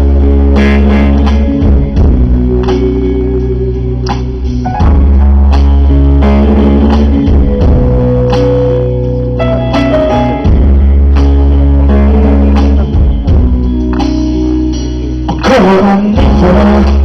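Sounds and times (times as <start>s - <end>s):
deep bass: 0.0s - 17.0s
plucked guitar notes: 0.0s - 17.0s.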